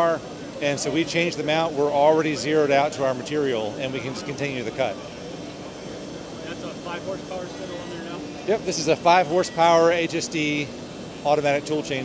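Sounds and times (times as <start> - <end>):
man asking a question: 0.0 - 5.0, 6.4 - 12.0
exhibition hall din: 0.0 - 12.0.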